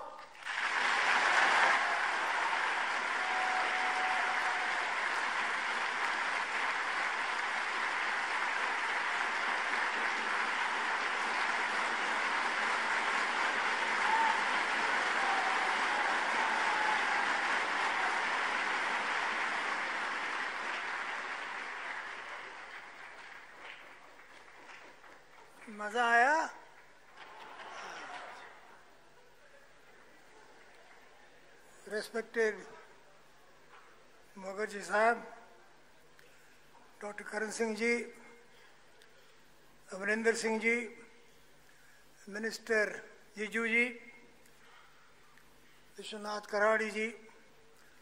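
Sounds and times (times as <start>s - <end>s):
large audience applauding: 0.3s - 25.7s, 26.7s - 28.9s.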